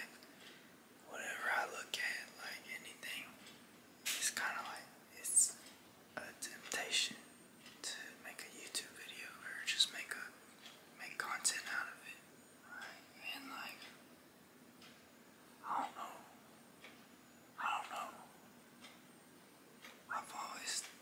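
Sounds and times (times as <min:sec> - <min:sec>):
man whispering: 0:01.0 - 0:03.4, 0:04.1 - 0:05.6, 0:06.2 - 0:07.2, 0:07.8 - 0:10.4, 0:11.0 - 0:13.9, 0:15.6 - 0:16.4, 0:17.6 - 0:18.3, 0:20.1 - 0:21.0.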